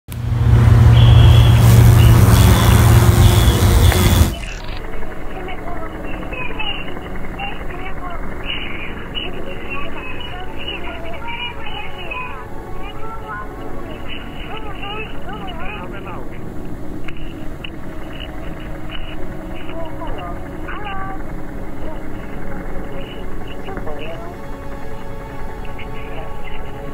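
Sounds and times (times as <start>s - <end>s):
drawn-out gliding tones: 0.1s - 26.9s
slowed beetle wingbeats drone: 0.9s - 11.8s
beetle wings buzzing: 1.0s - 4.8s.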